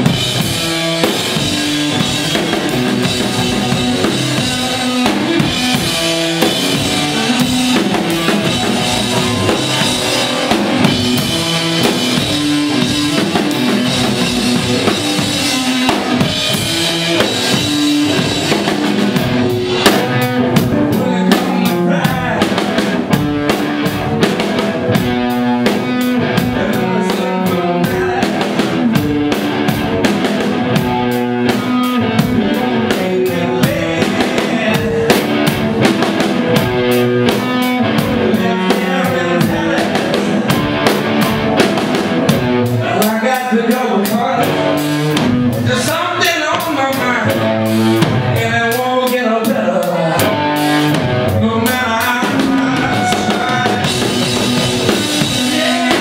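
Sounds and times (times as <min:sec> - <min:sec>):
drum kit: 0:00.0 - 0:56.0
electric guitar: 0:00.0 - 0:56.0.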